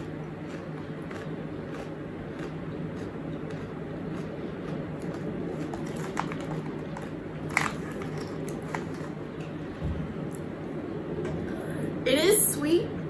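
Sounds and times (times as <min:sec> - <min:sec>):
person chewing crunchy snack: 0:00.0 - 0:09.6
low background hum: 0:00.0 - 0:13.0.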